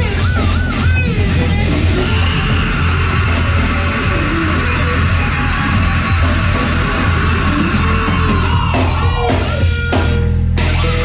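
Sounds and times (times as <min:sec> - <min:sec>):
death metal band playing: 0:00.0 - 0:11.0
harsh vocal scream: 0:01.9 - 0:09.7.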